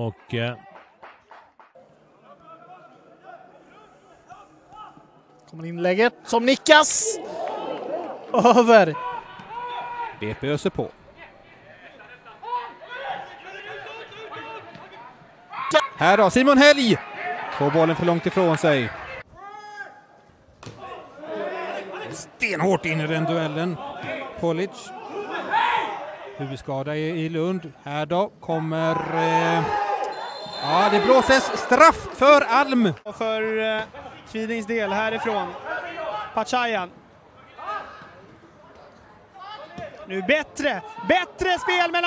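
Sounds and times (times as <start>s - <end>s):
faint stadium background noise: 0.0s - 42.0s
man speaking: 30.6s - 33.0s
man commentating: 30.6s - 33.6s, 40.1s - 42.0s.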